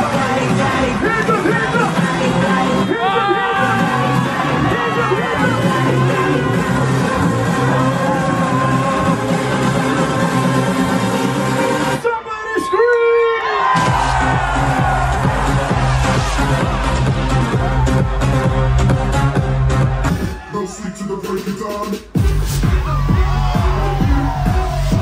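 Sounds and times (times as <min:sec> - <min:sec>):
crowd cheering: 0:00.0 - 0:21.6, 0:22.6 - 0:25.0
electronic dance music: 0:00.0 - 0:25.0.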